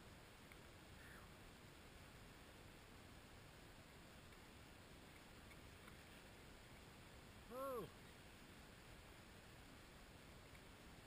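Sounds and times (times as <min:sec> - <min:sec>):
person's short voice sound: 0:07.5 - 0:08.0.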